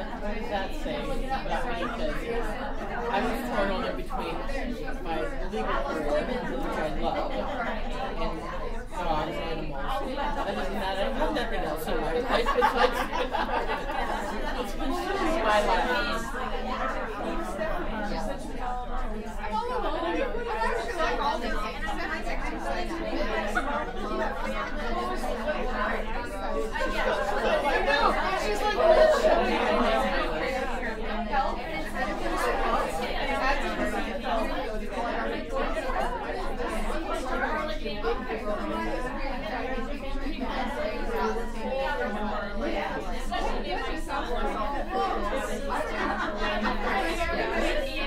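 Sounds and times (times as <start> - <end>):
women chattering: 0.0 - 48.0.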